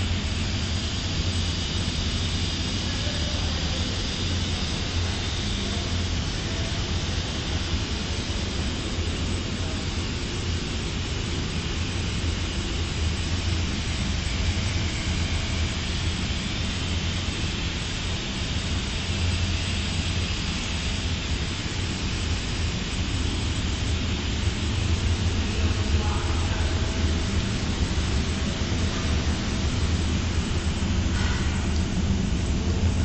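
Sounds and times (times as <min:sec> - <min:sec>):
machine humming and hissing: 0:00.0 - 0:33.0.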